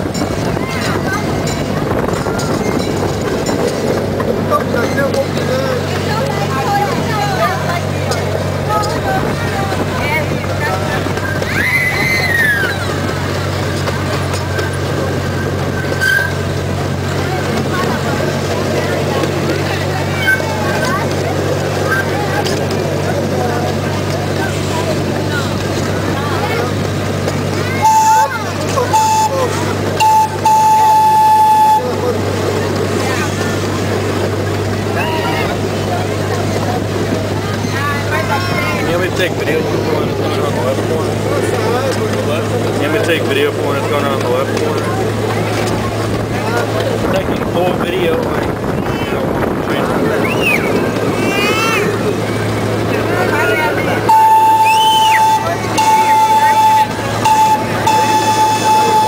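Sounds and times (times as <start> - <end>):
miniature train rolling drone: 0.0 - 59.0
train horn toots: 27.8 - 32.0, 54.1 - 59.0.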